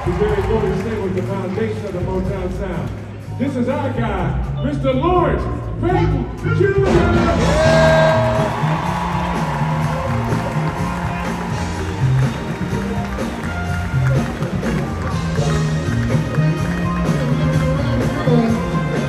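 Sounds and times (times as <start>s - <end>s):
soul band playing instrumental: 6.8s - 19.0s.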